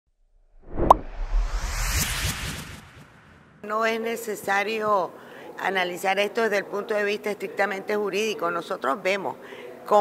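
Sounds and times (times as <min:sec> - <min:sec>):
whoosh: 0:00.3 - 0:03.7
low rumble: 0:00.5 - 0:03.7
sharp pop: 0:00.6 - 0:03.6.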